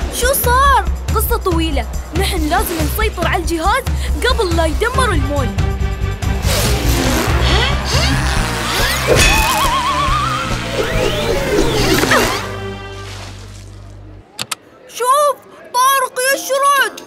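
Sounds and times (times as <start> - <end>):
dramatic cartoon action music: 0.0 - 12.9
warbling rising tone: 8.7 - 12.5.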